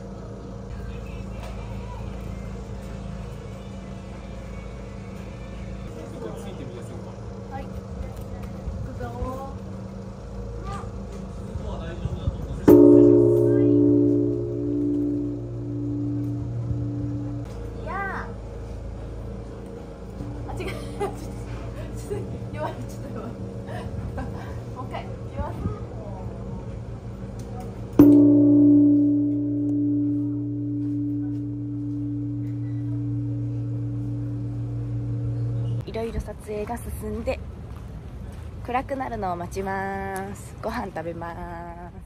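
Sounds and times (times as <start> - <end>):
large temple bell ringing: 12.7 - 18.1, 28.0 - 35.8.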